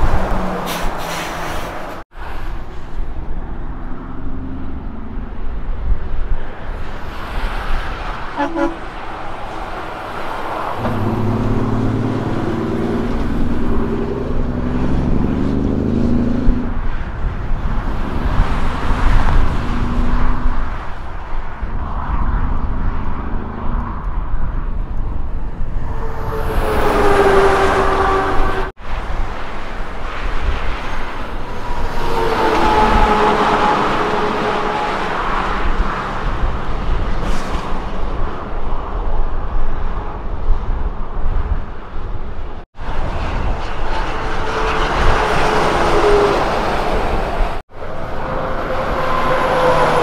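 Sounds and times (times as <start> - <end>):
diesel truck engines: 0.0 - 21.2, 42.2 - 50.0
trucks passing: 0.0 - 50.0.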